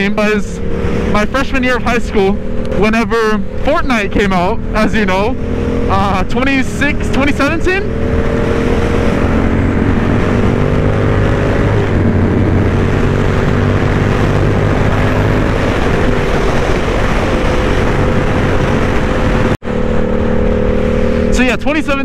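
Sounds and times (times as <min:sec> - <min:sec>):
wind rushing over microphone: 0:00.0 - 0:21.4
motorcycle engine running: 0:00.0 - 0:22.0.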